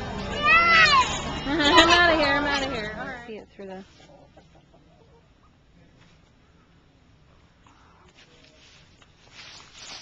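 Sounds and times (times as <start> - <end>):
low background noise: 0.0 - 10.0
fowl clucking: 4.0 - 5.5.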